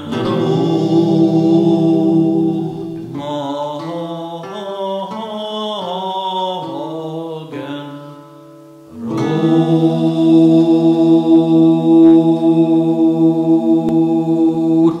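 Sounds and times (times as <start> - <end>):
male voices singing sustained chord: 0.0 - 8.3, 8.9 - 15.0.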